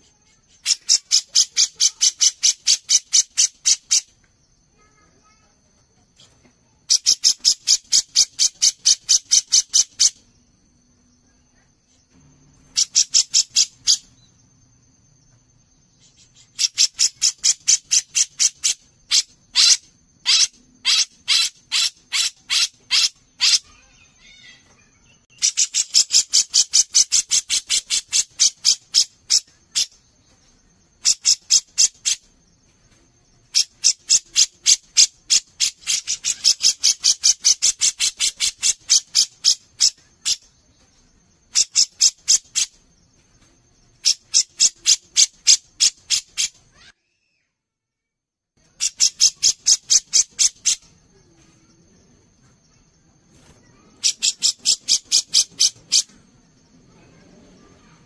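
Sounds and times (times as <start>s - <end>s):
bird calling in harsh notes: 12.6s - 14.3s, 16.0s - 30.0s, 53.4s - 56.2s.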